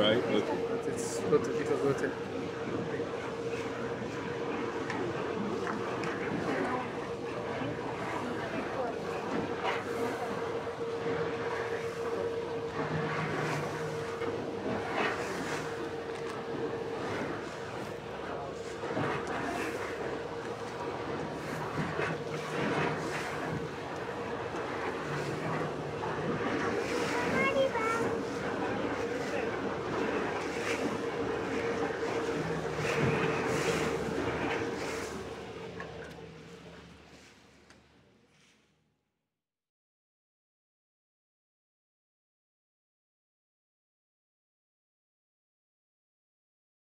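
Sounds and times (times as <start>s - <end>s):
wind and water rushing: 0.0s - 37.0s
boat engine hum: 0.0s - 38.9s.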